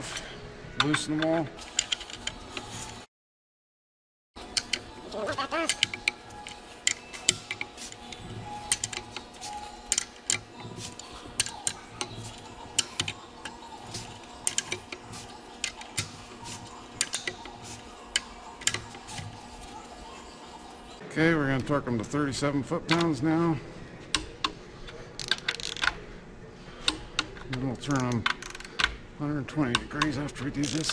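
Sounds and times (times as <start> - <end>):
faint steady hum: 4.4 - 30.9
hand ratchet clicking: 5.7 - 8.1, 12.8 - 19.3, 29.6 - 30.9.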